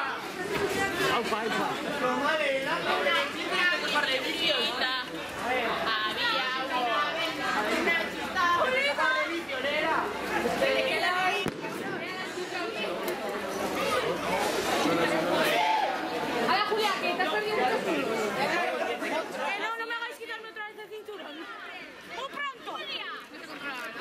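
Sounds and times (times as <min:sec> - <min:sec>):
chatter of young people: 0:00.0 - 0:24.0.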